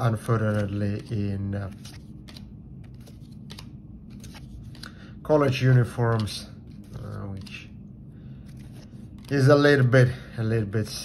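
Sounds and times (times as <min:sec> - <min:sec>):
trading cards flipped by hand: 0:00.0 - 0:07.8, 0:08.4 - 0:09.8
light clicks of card edges: 0:00.1 - 0:07.8, 0:08.4 - 0:09.8.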